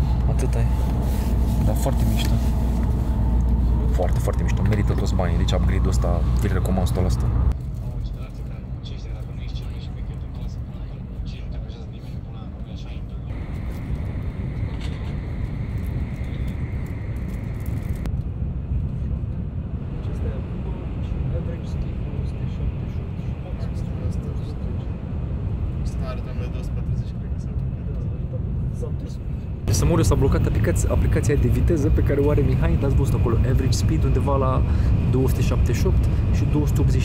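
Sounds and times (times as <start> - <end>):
train cabin rumble and hiss: 0.0 - 18.1, 25.9 - 37.0.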